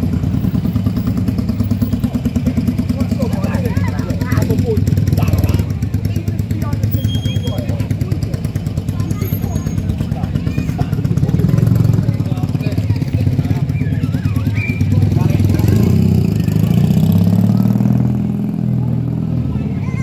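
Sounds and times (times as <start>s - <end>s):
vehicle engine running: 0.0s - 20.0s.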